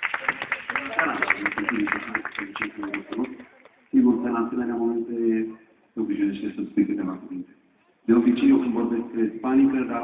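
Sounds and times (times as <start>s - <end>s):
man speaking over sound system: 0.8s - 3.4s, 4.0s - 10.0s.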